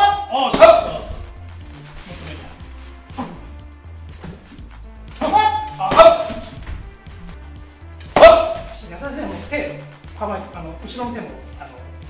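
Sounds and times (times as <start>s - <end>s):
background music with steady beat: 0.0s - 12.0s
kicks smacking into chest protector: 4.1s - 7.4s, 8.0s - 8.8s
short sharp shout: 5.2s - 6.5s.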